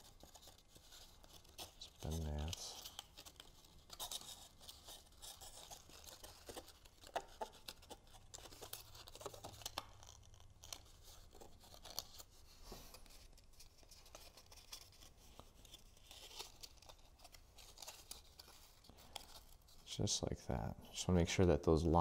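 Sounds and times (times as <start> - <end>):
small paper clicks: 0.0 - 19.9
cardstock rustling and crinkling: 0.0 - 20.0.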